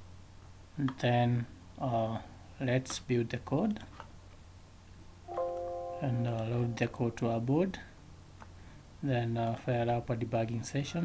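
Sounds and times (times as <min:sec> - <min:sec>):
faint low hum: 0:00.0 - 0:11.0
computer chime: 0:05.3 - 0:07.1.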